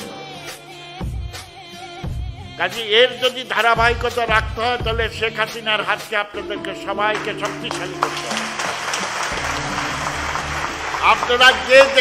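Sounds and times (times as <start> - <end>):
audience applauding: 7.1 - 12.0.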